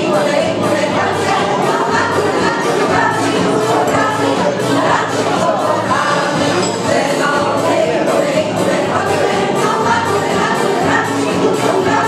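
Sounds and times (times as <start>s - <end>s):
accordion: 0.0s - 12.0s
women's choir singing: 0.0s - 12.0s.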